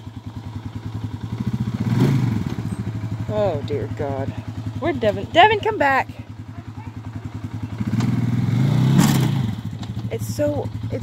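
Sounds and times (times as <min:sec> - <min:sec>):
quad bike engine under load: 0:00.0 - 0:11.0.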